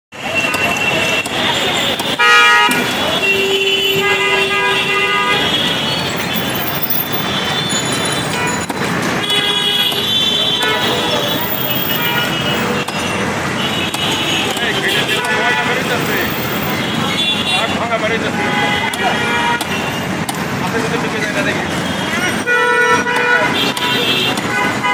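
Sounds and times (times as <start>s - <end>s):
vehicle horns honking: 0.1s - 20.3s, 21.4s - 24.9s
traffic noise: 0.1s - 24.9s
people talking: 0.2s - 5.9s, 10.0s - 13.2s, 14.3s - 19.8s, 20.5s - 24.9s.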